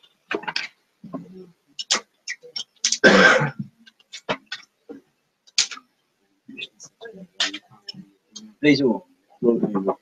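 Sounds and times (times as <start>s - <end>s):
person coughing harshly: 3.0s - 3.6s.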